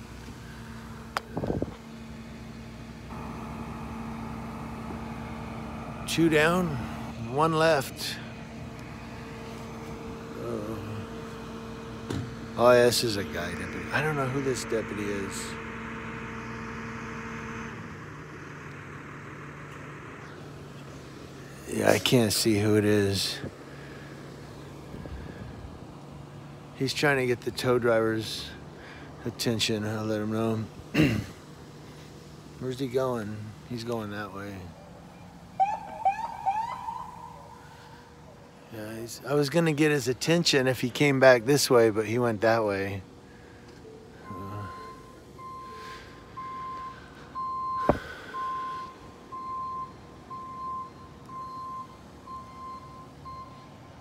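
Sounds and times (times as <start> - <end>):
vehicle engines idling: 0.0 - 54.0
police siren whoops: 35.6 - 37.6.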